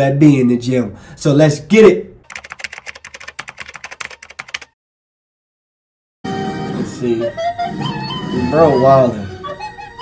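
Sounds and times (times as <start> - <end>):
computer keyboard typing: 2.2 - 4.8.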